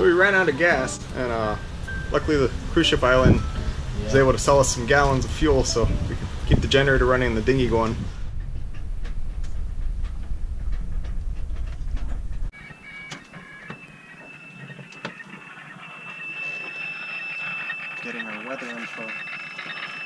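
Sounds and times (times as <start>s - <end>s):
loud low rumble: 1.0s - 12.5s
steady high whistle: 12.6s - 20.0s.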